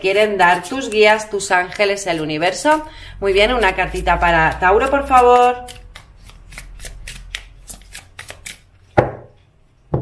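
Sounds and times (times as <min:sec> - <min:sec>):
cards being shuffled by hand: 0:05.2 - 0:08.7.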